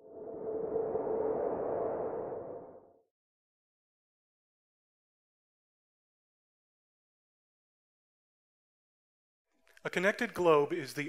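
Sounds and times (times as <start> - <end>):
whoosh: 0.0 - 3.0.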